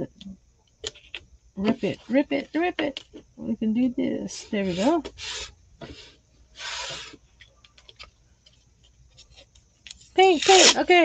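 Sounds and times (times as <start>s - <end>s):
tape ripped off roll: 10.4s - 10.8s.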